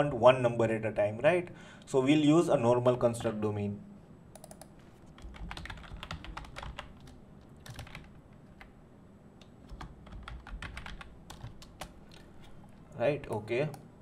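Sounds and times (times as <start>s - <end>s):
typing on computer keyboard: 4.4s - 8.7s, 9.6s - 12.2s.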